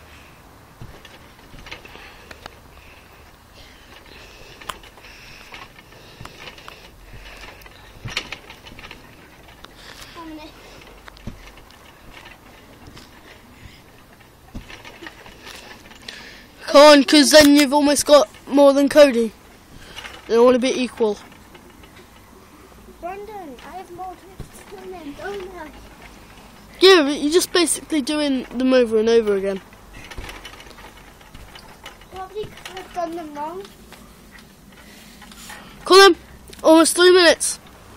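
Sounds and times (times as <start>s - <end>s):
trampoline springs creaking: 0.0s - 37.9s
thumps on trampoline mat: 0.8s - 2.0s, 11.2s - 13.2s, 14.5s - 15.4s, 24.1s - 24.8s
dull low thud: 11.2s - 15.4s.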